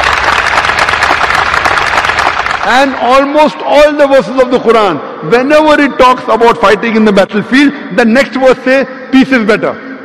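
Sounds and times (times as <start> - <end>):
audience applauding: 0.0 - 3.1.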